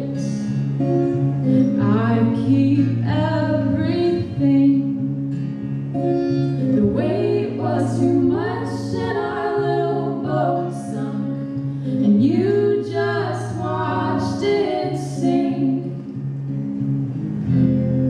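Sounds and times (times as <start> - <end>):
acoustic guitar: 0.0 - 18.0
women singing long notes: 6.6 - 16.1.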